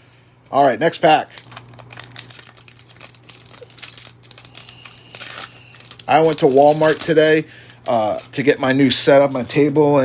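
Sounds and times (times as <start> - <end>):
foil wrapper crinkling and tearing: 0.5 - 10.0.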